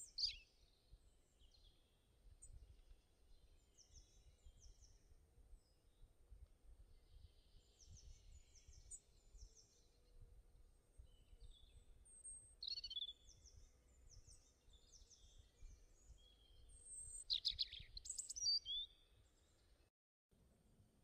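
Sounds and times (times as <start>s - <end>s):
faint birds chirping: 0.0s - 19.9s.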